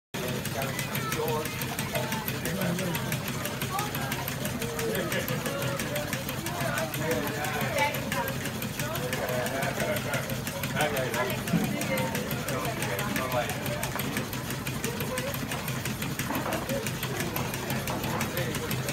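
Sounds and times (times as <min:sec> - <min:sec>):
steam engine rapid clicking: 0:00.2 - 0:18.9.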